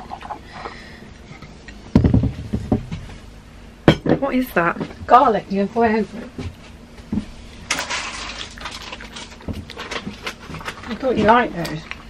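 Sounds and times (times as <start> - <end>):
crunching and chewing garlic: 7.8 - 11.0.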